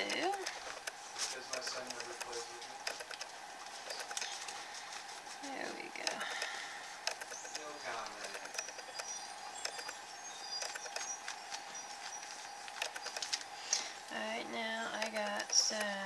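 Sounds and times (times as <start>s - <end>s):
faint steady whine: 0.0s - 16.0s.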